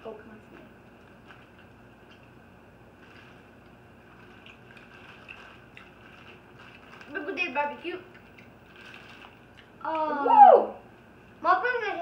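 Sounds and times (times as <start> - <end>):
low room hum: 0.0 - 12.0
faint chewing: 0.5 - 2.4, 3.0 - 10.2
plastic bag rustling: 2.9 - 9.6.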